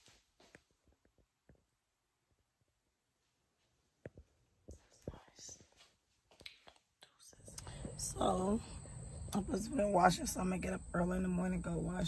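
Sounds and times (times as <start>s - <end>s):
person whispering: 4.7s - 5.8s
low steady rumble: 7.4s - 12.0s.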